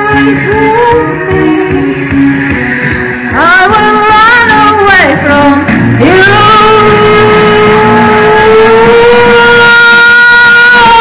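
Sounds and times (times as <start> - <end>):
rock backing track: 0.0 - 9.6
woman singing long loud note: 3.4 - 11.0.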